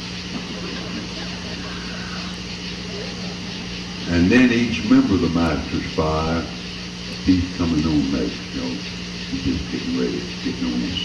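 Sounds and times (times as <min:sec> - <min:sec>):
low electrical hum: 0:00.0 - 0:11.0
sound system hiss: 0:00.0 - 0:11.0.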